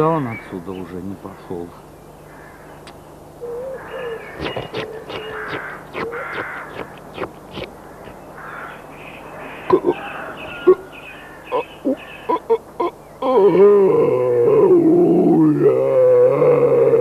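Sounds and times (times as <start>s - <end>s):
harsh crow-like bird calls: 2.1s - 13.3s.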